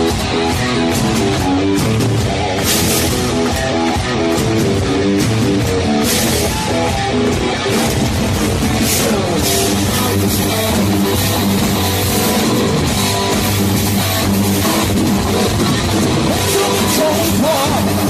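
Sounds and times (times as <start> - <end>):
drum kit: 0.0 - 18.0
electric guitar: 0.0 - 18.0.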